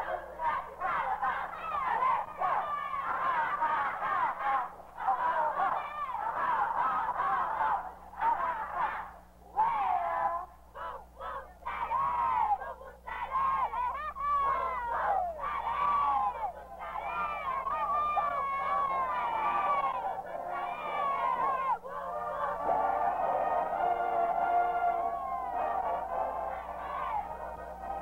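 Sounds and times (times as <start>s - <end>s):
children shouting: 0.0s - 28.0s
low steady hum: 0.0s - 28.0s.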